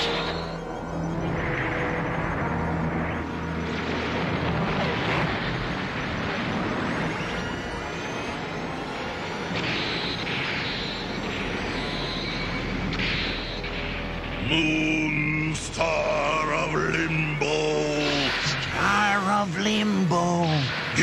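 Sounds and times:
electric crackling: 0.0s - 21.0s.

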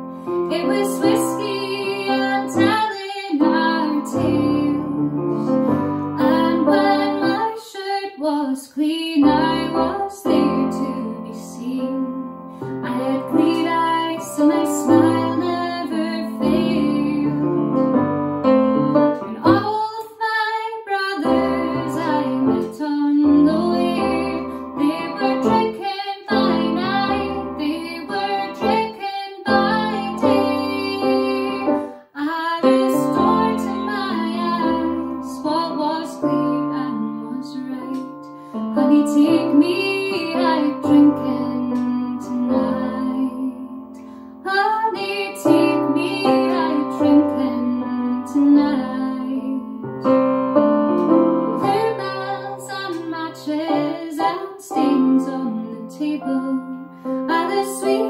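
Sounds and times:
digital piano: 0.0s - 7.6s, 9.0s - 58.0s
woman singing: 0.0s - 17.8s, 19.4s - 50.0s, 51.4s - 58.0s.

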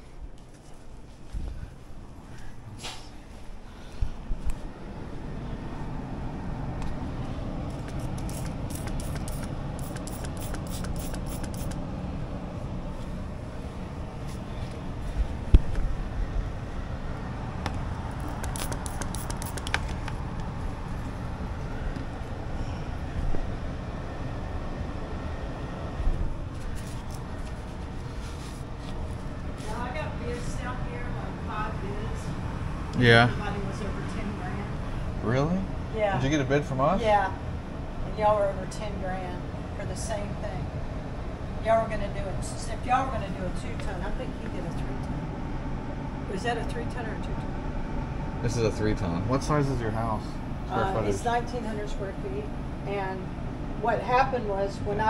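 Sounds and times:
air handler rumble: 0.0s - 55.0s
sharp clicks: 7.8s - 11.8s, 18.2s - 20.2s.

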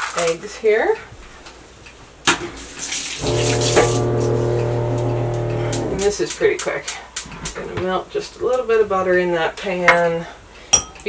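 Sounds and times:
water running into sink: 2.6s - 6.1s
water pump humming: 3.2s - 6.2s.

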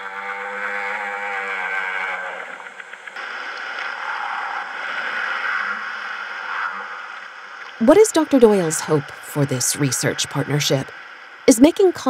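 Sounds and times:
whale song: 0.0s - 11.9s.

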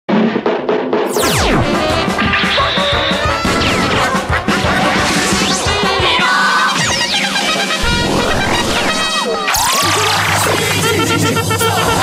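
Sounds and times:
upbeat theme music: 0.1s - 12.0s
crash sound effects: 1.1s - 6.1s, 6.7s - 10.9s.

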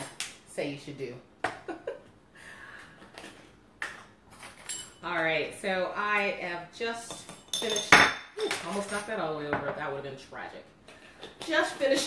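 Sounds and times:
glass jars clicking and clinking: 3.9s - 5.2s, 7.1s - 9.2s.

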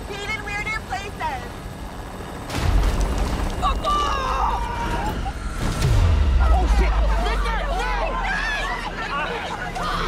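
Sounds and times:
people crying out: 3.6s - 5.6s, 6.3s - 10.0s.

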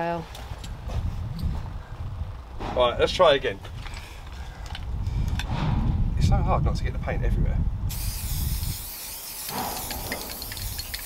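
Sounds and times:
spray-paint can hissing: 7.9s - 11.0s.

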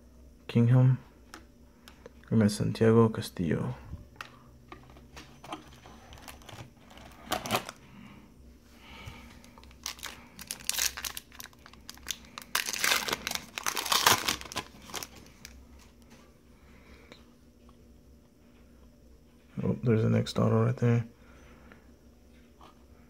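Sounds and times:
foil wrapper tearing and crinkling: 9.5s - 15.5s.

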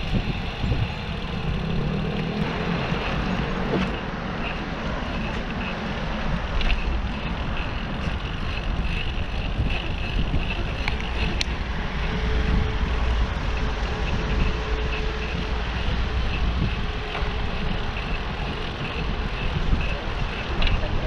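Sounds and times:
motor traffic passing: 0.0s - 21.0s
wind rushing past bicycle: 0.0s - 21.0s.

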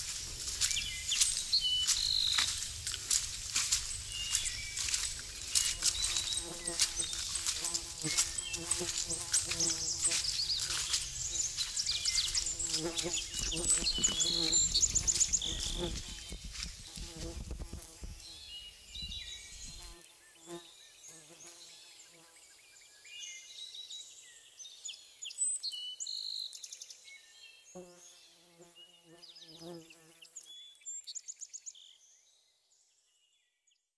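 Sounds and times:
footsteps through undergrowth: 0.0s - 20.0s
birds singing and chirping: 0.4s - 20.6s.

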